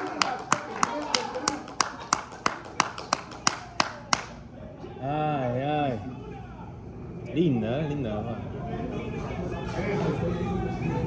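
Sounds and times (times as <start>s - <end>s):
person clapping hands: 0.0s - 4.4s.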